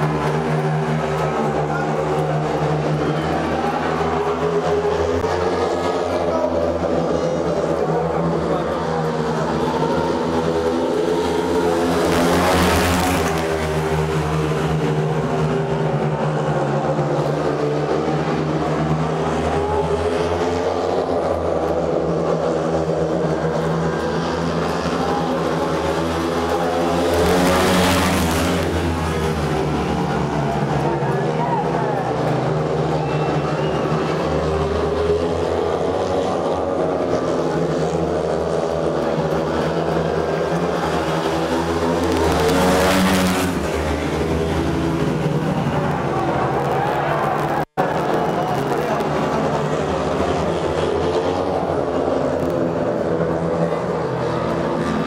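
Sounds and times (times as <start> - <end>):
motorbikes racing high-revving: 0.0 - 55.0.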